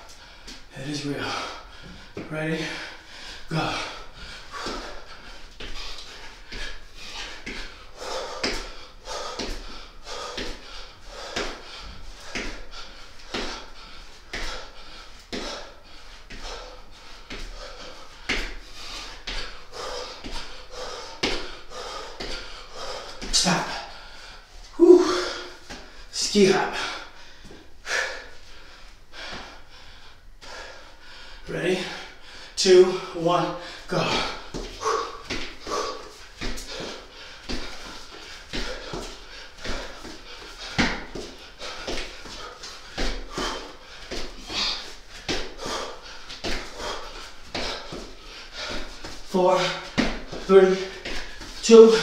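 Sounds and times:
man breathing hard: 0.0 - 52.0
man groaning and gasping: 2.6 - 5.1, 24.7 - 25.6, 32.8 - 37.0, 44.4 - 44.9.

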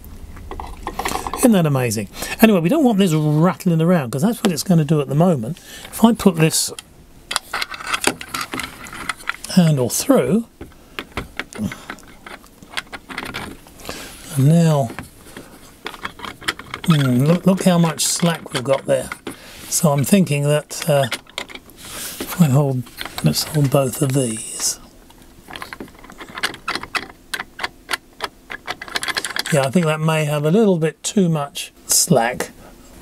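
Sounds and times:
metal spindle clicking and rattling: 6.7 - 9.5, 10.6 - 13.7, 14.8 - 20.2, 20.8 - 21.8, 25.4 - 30.0.

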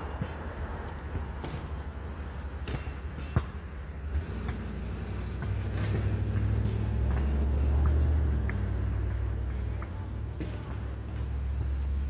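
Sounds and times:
passing vehicle engine rumble: 3.8 - 12.0.

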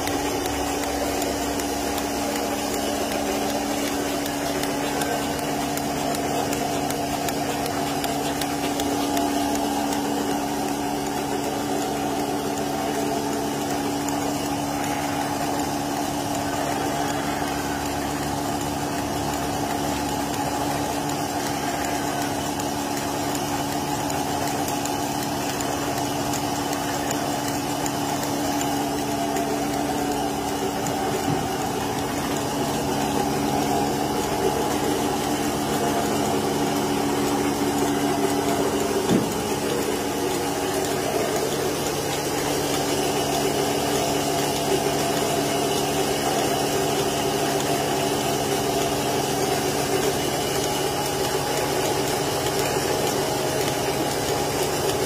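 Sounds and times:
vacuum pump humming: 0.0 - 55.0.

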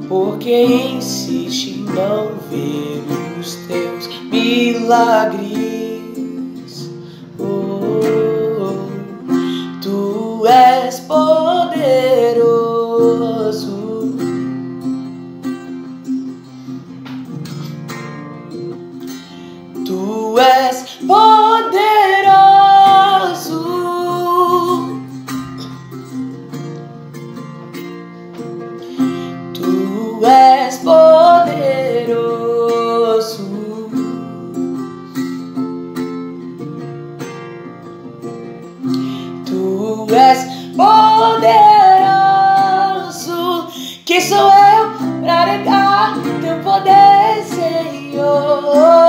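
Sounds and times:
young man singing high notes: 0.0 - 14.4, 19.9 - 25.0, 29.2 - 34.5, 39.0 - 49.0
acoustic guitar: 0.0 - 49.0.

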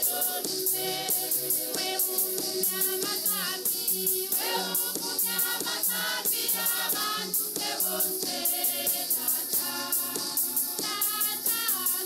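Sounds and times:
choir singing a hymn: 0.0 - 12.0
steady percussion beat: 0.0 - 12.0.

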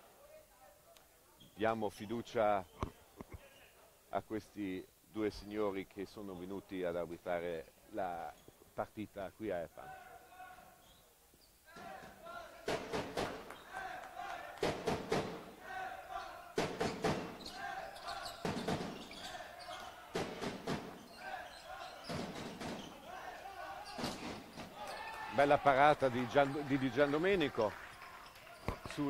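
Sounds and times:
ball bouncing on wooden floor: 20.1 - 21.0.

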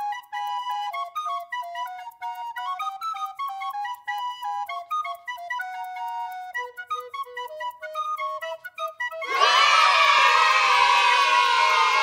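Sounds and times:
flute melody: 0.0 - 12.0
children cheering and shouting: 9.2 - 12.0.

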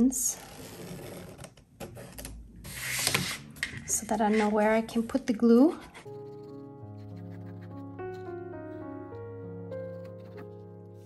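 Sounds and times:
pen and paper rubbing on table: 2.7 - 8.3.

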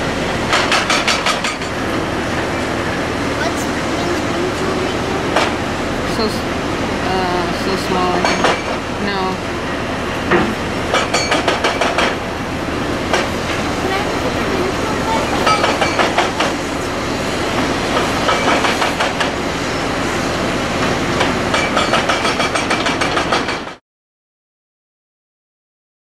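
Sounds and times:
diesel engines running: 0.0 - 23.7.

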